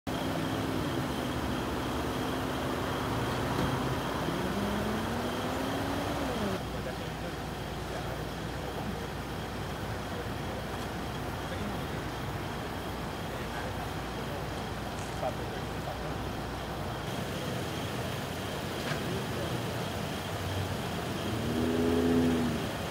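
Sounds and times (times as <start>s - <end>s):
street traffic noise: 0.0s - 22.9s
vehicle engine running: 0.1s - 22.9s.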